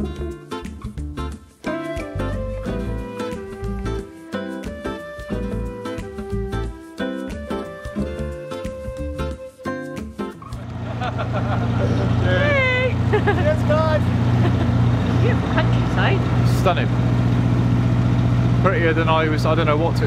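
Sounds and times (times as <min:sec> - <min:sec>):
music: 0:00.0 - 0:14.1, 0:14.8 - 0:16.9, 0:18.6 - 0:20.0
diesel engine running steadily: 0:10.6 - 0:20.0.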